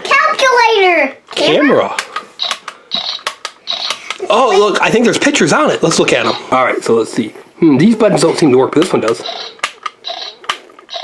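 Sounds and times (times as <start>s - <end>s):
toy camera rattles: 2.4s - 4.2s, 8.8s - 11.0s.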